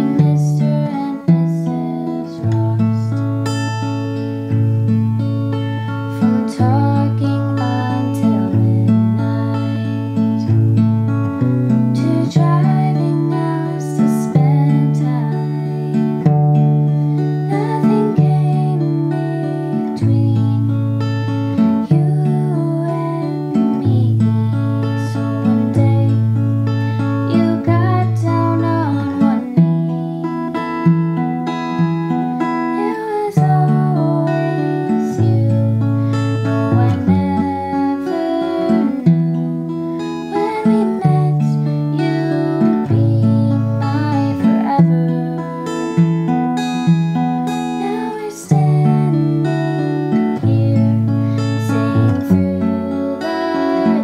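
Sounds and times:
woman singing softly: 0.0s - 4.6s, 5.7s - 10.6s, 11.7s - 54.0s
acoustic guitar chords: 0.0s - 54.0s.

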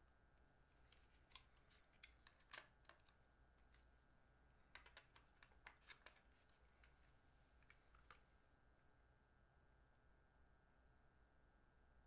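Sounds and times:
small hard objects clicking: 4.7s - 6.2s.

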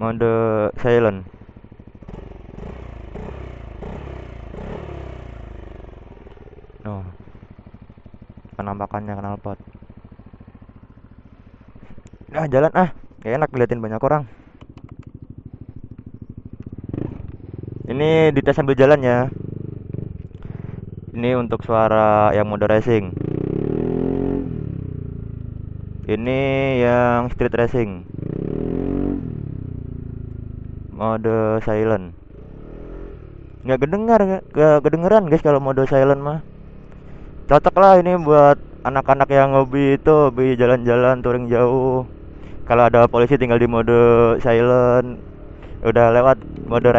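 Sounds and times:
scooter engine throttle blips: 0.1s - 46.9s.

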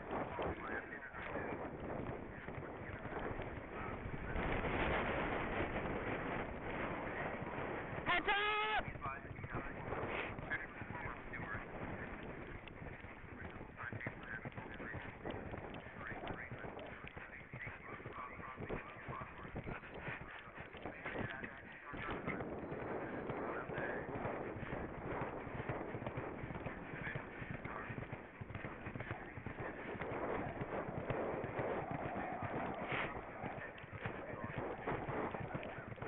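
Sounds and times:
horse hoofbeats on turf: 0.0s - 36.0s
wind rushing on microphone: 0.0s - 36.0s.

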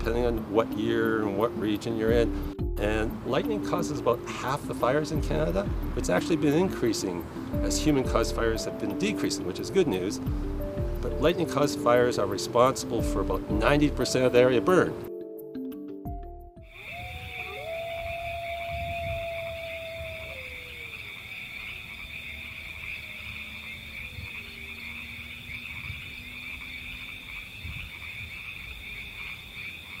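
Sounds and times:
long falling call: 16.6s - 21.5s
frogs trilling: 16.6s - 30.0s.

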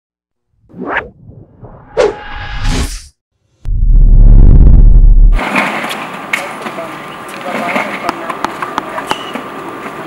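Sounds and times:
whoosh: 0.6s - 5.5s
low rumble: 1.0s - 5.4s.

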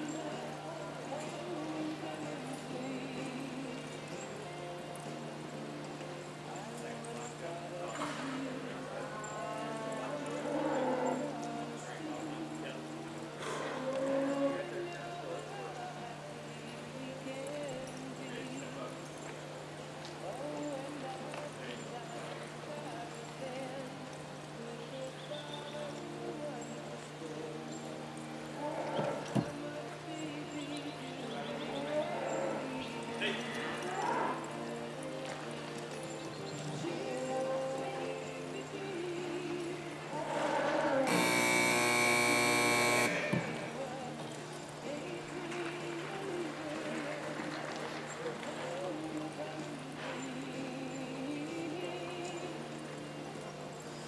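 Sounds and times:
background music: 0.0s - 54.0s
faint background voices: 0.0s - 54.0s
buzzer horn blast: 41.1s - 43.7s.

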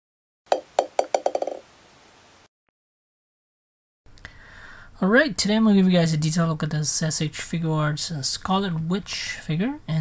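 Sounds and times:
small hard ball bouncing: 0.5s - 1.6s.

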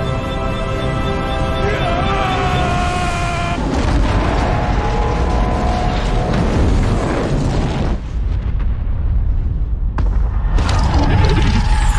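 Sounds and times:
loud crash with low rumble: 3.6s - 11.9s.

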